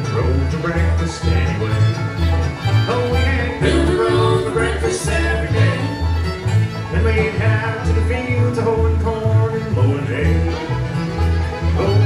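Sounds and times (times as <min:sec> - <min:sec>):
acoustic guitar: 0:00.0 - 0:12.0
banjo: 0:00.0 - 0:12.0
fiddles: 0:00.0 - 0:12.0
upright bass: 0:00.0 - 0:12.0.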